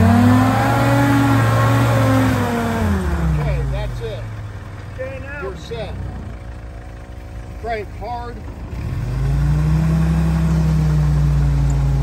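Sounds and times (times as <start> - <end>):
engine running under load: 0.0 - 12.0.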